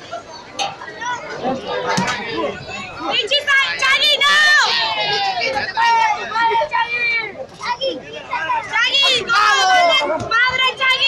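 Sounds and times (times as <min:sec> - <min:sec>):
crowd shouting excitedly: 0:01.0 - 0:11.0.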